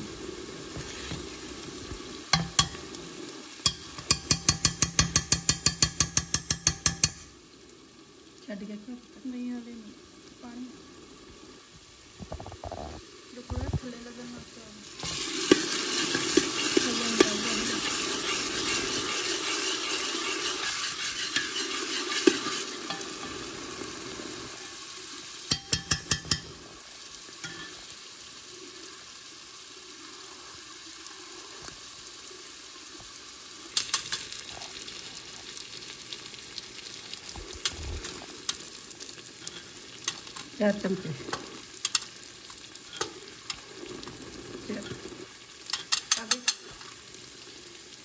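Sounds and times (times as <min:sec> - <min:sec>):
vegetables sizzling in a pan: 0:00.0 - 0:48.0
spoon tapping against pan: 0:02.3 - 0:02.9, 0:03.6 - 0:07.3, 0:15.5 - 0:17.6, 0:22.2 - 0:23.2, 0:25.5 - 0:26.6, 0:27.4 - 0:27.8, 0:33.8 - 0:34.3, 0:41.3 - 0:42.1, 0:45.7 - 0:46.8.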